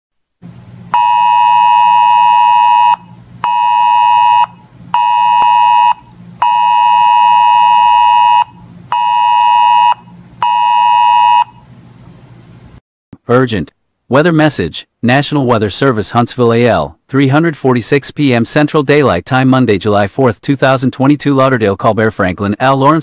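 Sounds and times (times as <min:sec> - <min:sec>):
weather radio alert beeps: 0:01.0 - 0:11.5.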